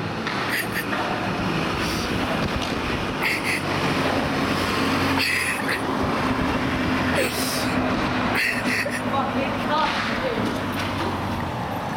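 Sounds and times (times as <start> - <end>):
large vehicle engine rumbling: 0.0 - 11.9.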